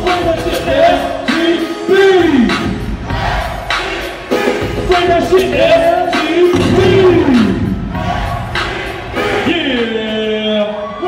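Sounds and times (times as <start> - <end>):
hip hop beat with heavy bass: 0.0 - 10.5
crowd shouting: 2.9 - 4.8, 6.5 - 9.8.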